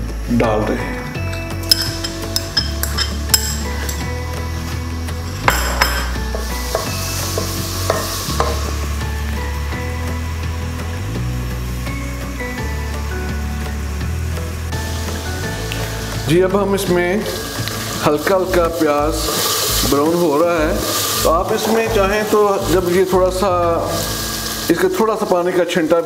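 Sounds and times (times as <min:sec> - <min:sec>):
background music with bass line: 0:00.0 - 0:25.2
onions sizzling in hot oil: 0:01.3 - 0:26.0
wooden spoon knocking pot: 0:05.4 - 0:08.8.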